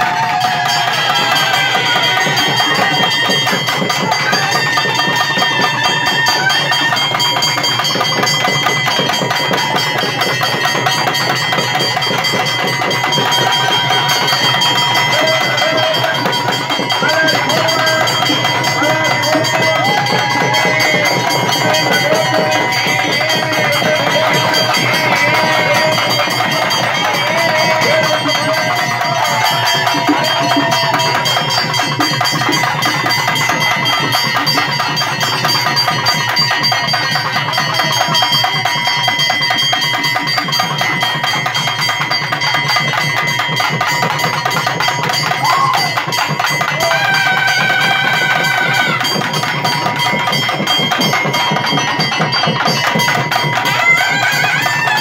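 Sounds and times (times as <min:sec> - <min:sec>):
fast loud drumming: 0:00.0 - 0:55.0.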